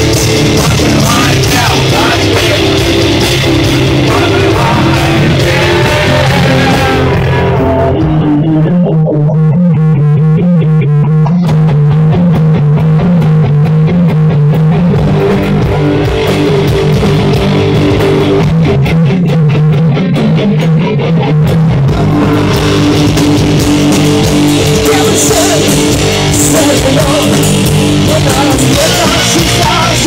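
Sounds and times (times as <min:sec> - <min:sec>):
drums and cymbals: 0:00.0 - 0:08.2, 0:14.6 - 0:19.1, 0:21.5 - 0:30.0
bass guitar: 0:00.0 - 0:30.0
electric guitar riff: 0:00.0 - 0:30.0.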